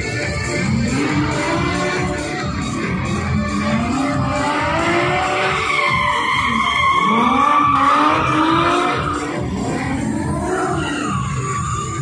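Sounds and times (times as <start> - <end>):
background music: 0.0 - 12.0
car engines revving: 0.0 - 12.0
tyres squealing: 4.8 - 9.8.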